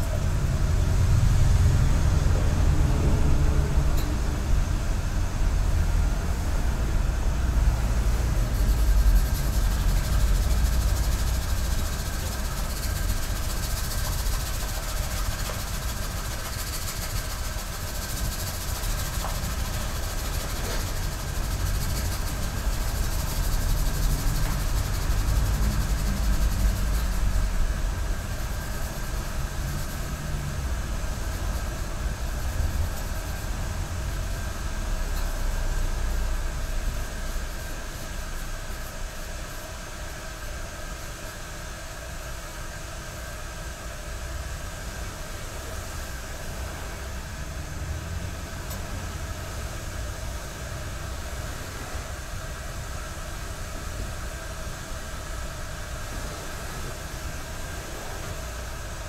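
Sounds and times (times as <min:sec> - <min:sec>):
kettle simmering: 0:00.0 - 0:59.0
tea whisk whisking in bowl: 0:08.5 - 0:27.4.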